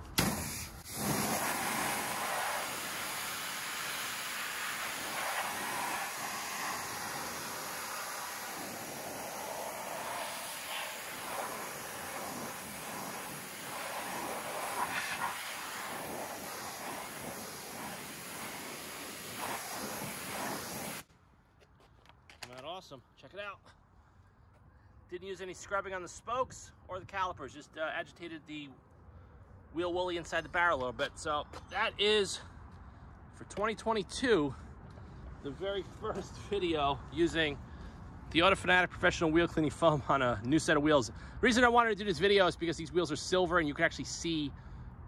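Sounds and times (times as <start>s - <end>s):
pressure washer spraying water: 0.0s - 21.0s.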